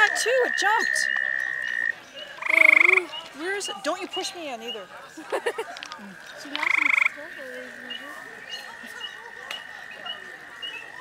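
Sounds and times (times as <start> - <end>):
tree frog trill: 0.0 - 3.6, 5.9 - 11.0.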